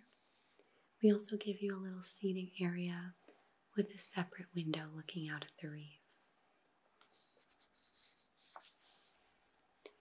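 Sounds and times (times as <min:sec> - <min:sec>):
paper rustling: 0:07.0 - 0:09.2.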